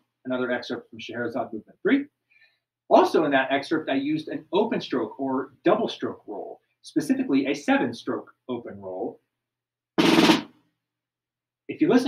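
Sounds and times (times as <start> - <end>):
snare drum roll: 10.0 - 10.6.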